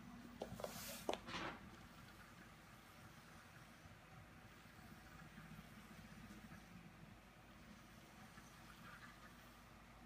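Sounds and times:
faint whirr of robot motors: 0:00.0 - 0:10.0.

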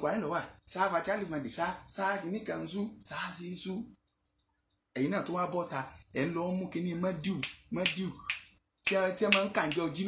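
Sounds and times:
man speaking animatedly: 0:00.0 - 0:03.9, 0:05.0 - 0:08.3, 0:08.9 - 0:10.0.

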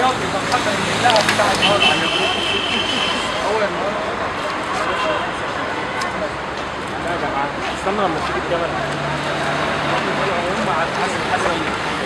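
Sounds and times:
people talking: 0:00.0 - 0:12.0
street traffic: 0:00.0 - 0:12.0.

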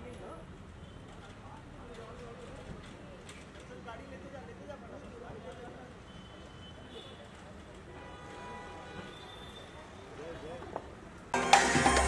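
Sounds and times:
loud music with heavy bass: 0:11.4 - 0:12.0.

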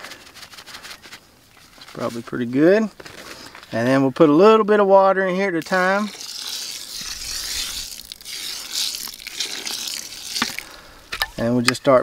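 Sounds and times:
water trickling onto seeds: 0:05.5 - 0:11.1.

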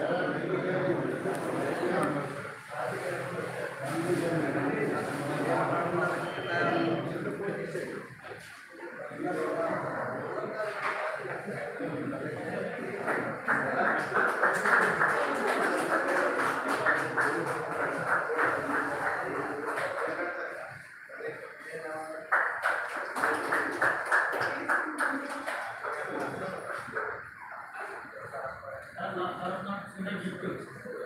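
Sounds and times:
people talking: 0:00.0 - 0:31.0.

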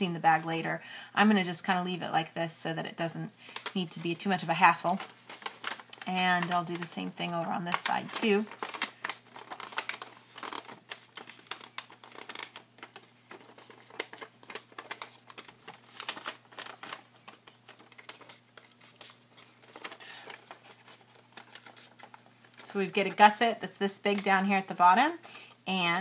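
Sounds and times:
paper rustling and crinkling: 0:03.5 - 0:23.4.

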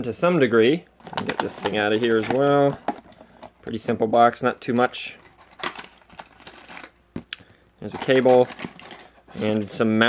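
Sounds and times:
cardboard box rustling and scraping: 0:07.9 - 0:10.0.

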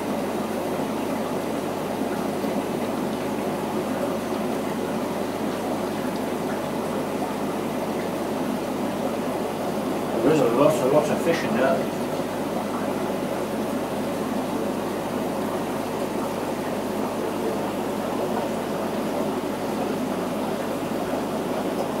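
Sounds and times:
aquarium water bubbling: 0:00.0 - 0:22.0.

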